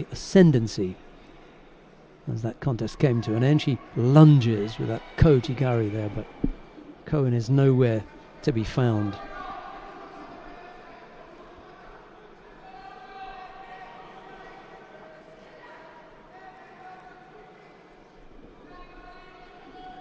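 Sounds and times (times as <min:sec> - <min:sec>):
crowd murmur indoors: 0:00.0 - 0:20.0.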